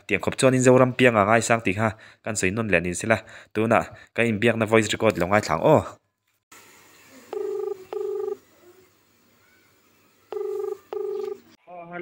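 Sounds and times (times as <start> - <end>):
telephone ringback tone: 7.3 - 8.4, 10.3 - 11.6.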